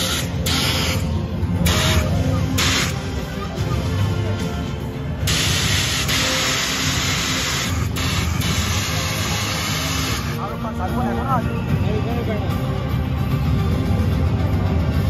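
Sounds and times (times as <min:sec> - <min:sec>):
gas jet cannons hissing: 0:00.0 - 0:03.1, 0:05.3 - 0:10.4.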